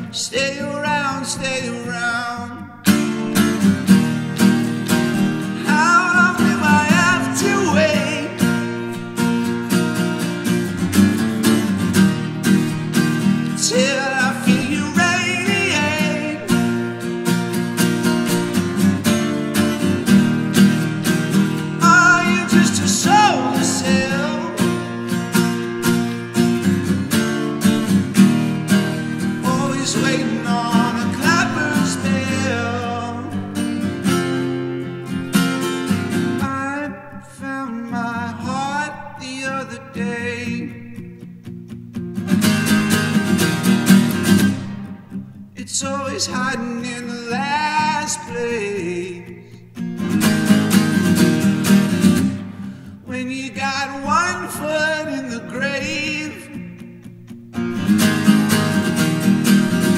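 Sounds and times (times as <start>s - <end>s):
man singing: 0.0s - 3.7s, 5.2s - 9.0s, 13.4s - 17.1s, 21.2s - 26.6s, 28.2s - 33.7s, 36.2s - 41.2s, 45.6s - 49.6s, 53.0s - 56.9s
acoustic guitar strumming: 0.0s - 59.9s.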